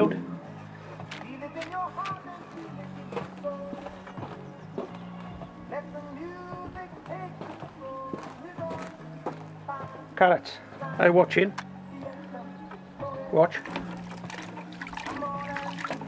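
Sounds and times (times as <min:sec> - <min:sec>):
love song on a radio: 0:00.0 - 0:16.0.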